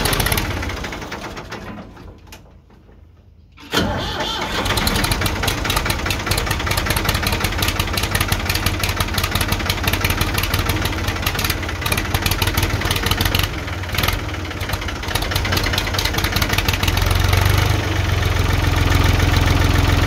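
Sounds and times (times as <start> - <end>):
diesel engine running rough: 0.0 - 1.6, 4.0 - 20.0.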